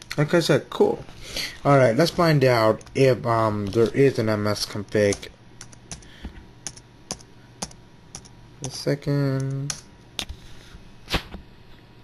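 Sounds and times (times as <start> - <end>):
keyboard keystrokes: 4.9 - 8.3.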